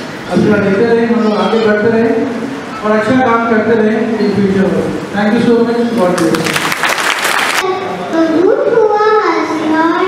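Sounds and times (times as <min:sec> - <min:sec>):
child singing into a microphone: 0:07.6 - 0:10.0.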